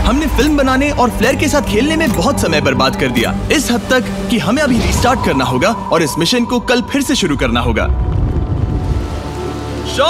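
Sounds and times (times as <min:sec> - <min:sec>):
low rumble: 0:00.0 - 0:10.0
steady rushing noise: 0:00.0 - 0:10.0.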